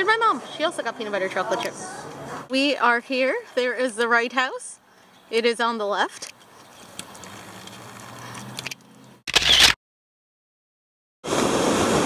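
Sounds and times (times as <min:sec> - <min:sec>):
faint outdoor background: 0:00.0 - 0:09.8.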